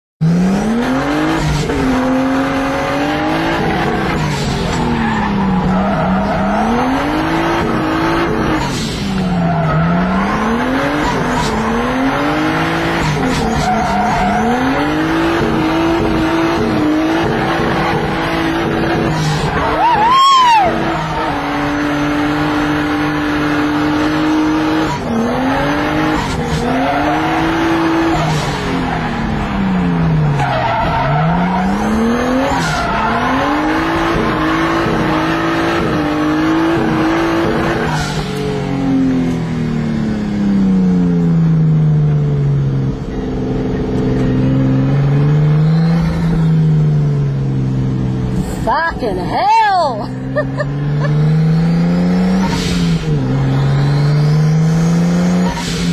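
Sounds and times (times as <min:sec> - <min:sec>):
car engine accelerating: 0:00.2 - 0:55.9
loud squeal: 0:13.1 - 0:15.1, 0:19.0 - 0:21.6.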